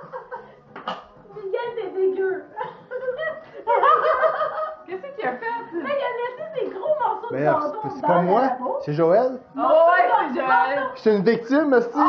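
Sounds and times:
people laughing: 0:02.6 - 0:04.9.

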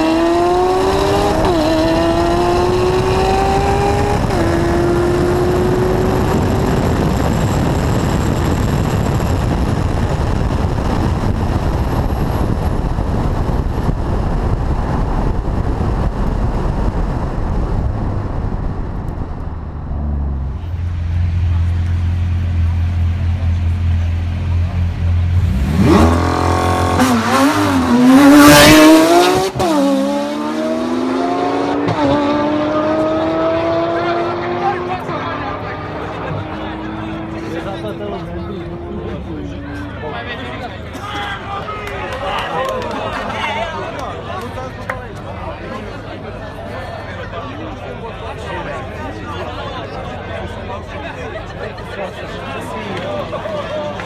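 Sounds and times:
rushing wind and road noise: 0:00.0 - 0:23.2, 0:24.9 - 0:42.5
car engine accelerating: 0:00.0 - 0:40.3
cars passing with revving engines: 0:00.0 - 0:41.0.

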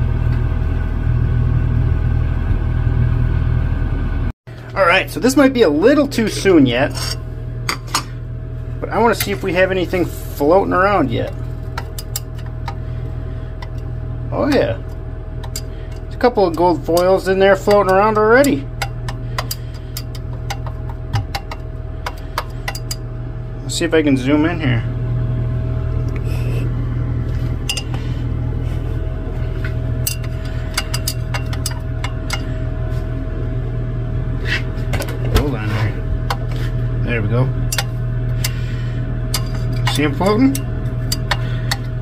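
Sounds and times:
steady low hum: 0:00.0 - 0:42.0
glass rod clinking in beaker: 0:27.7 - 0:27.9, 0:30.1 - 0:32.4.

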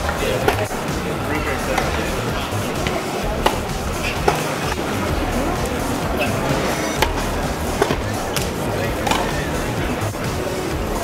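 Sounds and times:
tennis ball hitting racket: 0:00.0 - 0:10.3
background chatter: 0:00.0 - 0:11.0.

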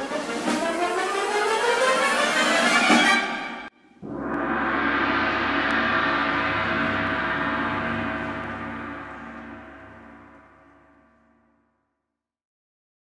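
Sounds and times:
concert band sustained chord: 0:04.0 - 0:11.1
gong ringing: 0:04.0 - 0:11.2.

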